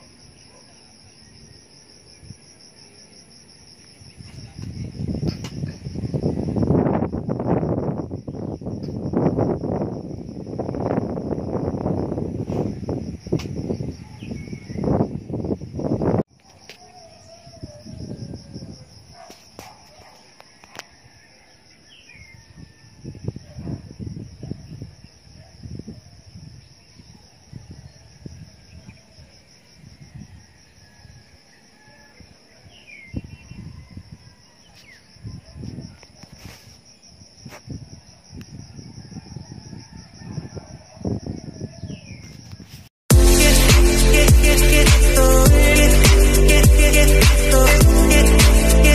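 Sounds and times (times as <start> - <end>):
insects trilling: 0.0 - 48.9
wind buffeting microphone: 4.0 - 16.3, 22.5 - 30.5, 33.1 - 34.4, 35.1 - 42.9.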